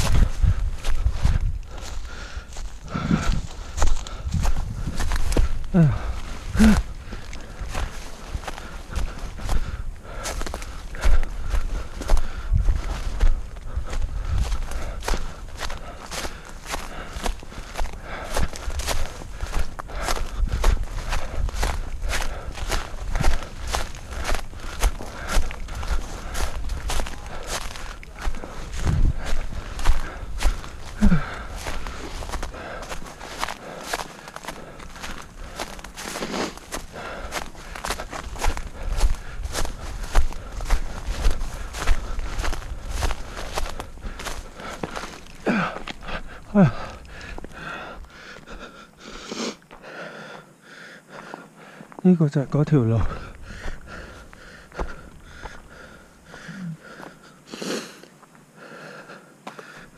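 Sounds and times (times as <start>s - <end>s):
footsteps on dirt path: 0.0s - 59.9s.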